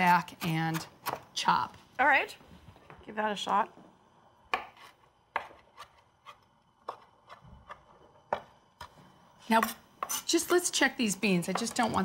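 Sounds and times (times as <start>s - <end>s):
knife chopping on cutting board: 0.0s - 1.3s, 4.5s - 6.0s.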